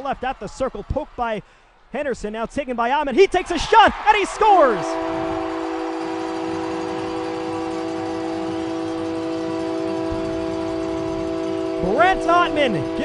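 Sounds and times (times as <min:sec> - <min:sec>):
crowd cheering: 0:00.0 - 0:01.9, 0:03.1 - 0:13.0
goal horn blast: 0:04.0 - 0:13.0.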